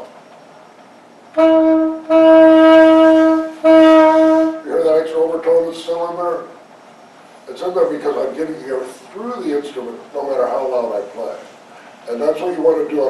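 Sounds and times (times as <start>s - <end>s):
alto saxophone notes: 1.3s - 4.7s.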